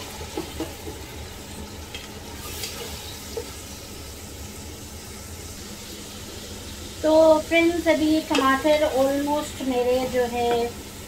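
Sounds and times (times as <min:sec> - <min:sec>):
vegetables sizzling in hot oil: 0:00.0 - 0:11.0.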